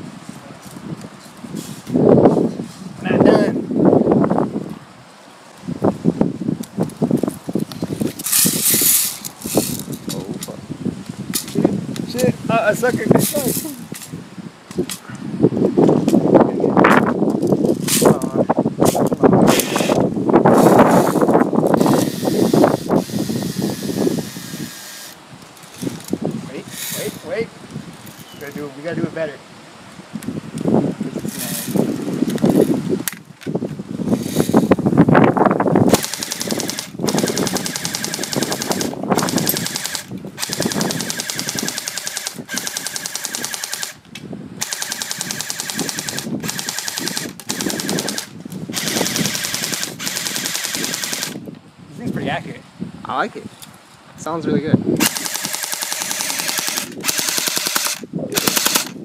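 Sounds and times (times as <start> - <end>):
airsoft rifle full-auto bursts: 35.9 - 44.0, 44.6 - 51.4, 55.0 - 59.0.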